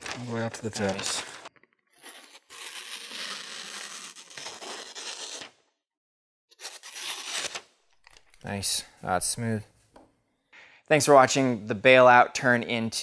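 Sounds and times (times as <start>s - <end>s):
knife slicing magazine paper: 0.0s - 5.6s, 6.6s - 7.7s.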